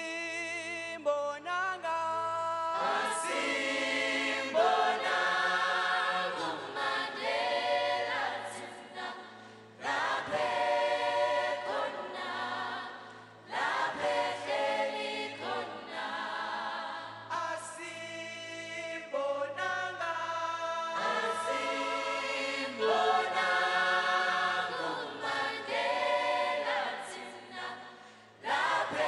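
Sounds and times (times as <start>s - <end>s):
choir singing in harmony: 2.3s - 29.0s.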